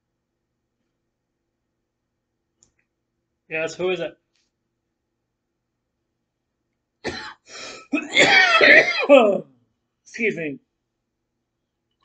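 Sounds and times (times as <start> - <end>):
man coughing: 7.1 - 9.4.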